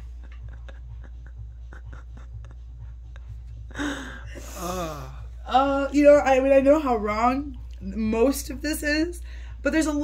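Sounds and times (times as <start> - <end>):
woman laughing: 0.0 - 4.6.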